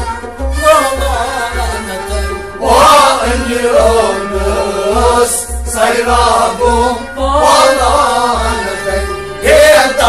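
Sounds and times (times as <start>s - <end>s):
steady drum beat: 0.0s - 10.0s
man singing long melodic lines: 0.5s - 10.0s.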